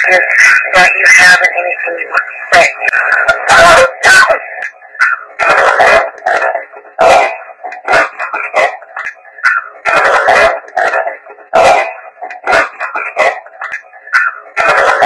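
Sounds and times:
choppy radio-like bursts: 0.0s - 15.0s.

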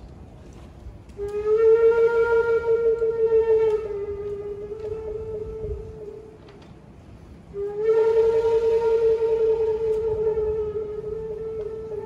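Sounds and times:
bamboo flute long note: 1.1s - 6.6s, 7.2s - 12.0s.

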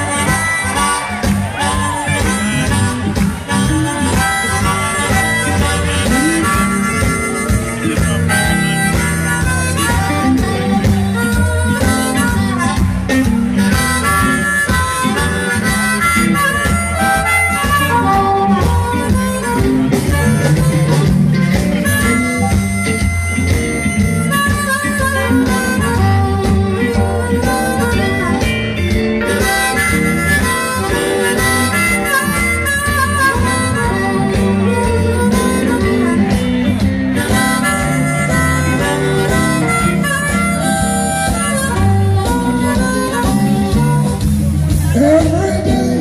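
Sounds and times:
amplified guitars: 0.0s - 46.0s
harmonica bending notes: 0.0s - 46.0s
steady bass line: 0.0s - 46.0s.

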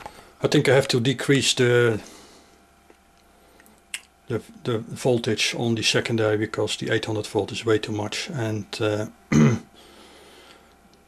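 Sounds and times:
man coughing: 9.3s - 9.7s.

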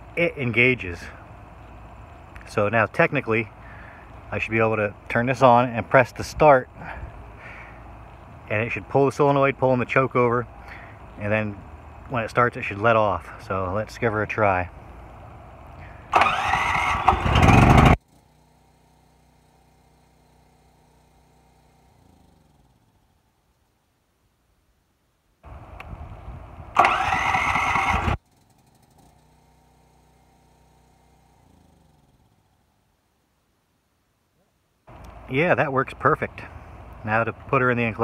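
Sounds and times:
engine spinning down: 0.0s - 23.1s, 25.4s - 32.8s
generator engine running: 0.0s - 23.1s, 25.4s - 32.8s, 34.9s - 38.0s
electric starter cranking: 15.8s - 22.9s, 26.7s - 32.5s.

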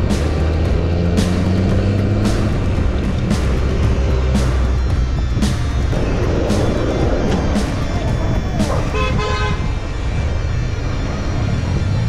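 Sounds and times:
low traffic rumble: 0.0s - 12.0s
vehicle horn toots: 8.8s - 9.8s.

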